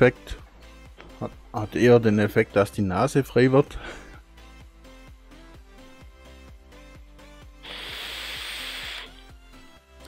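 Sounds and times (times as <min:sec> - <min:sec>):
background music with steady beat: 0:00.0 - 0:10.0
hiss of e-cigarette drag: 0:07.6 - 0:09.3.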